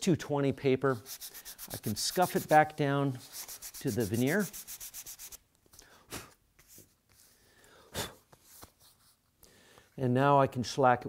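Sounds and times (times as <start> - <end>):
sandpaper sanding wood: 0.9 - 5.4.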